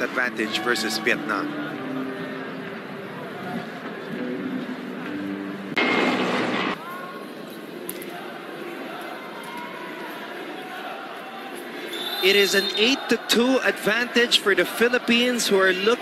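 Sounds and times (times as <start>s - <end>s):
indoor arena crowd chatter: 0.0s - 16.0s
loud noisy burst: 5.8s - 6.8s.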